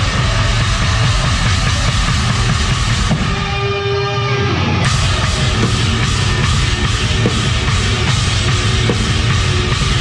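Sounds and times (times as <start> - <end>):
bass guitar: 0.0 - 10.0
distorted electric guitars: 0.0 - 10.0
drum kit: 0.0 - 10.0.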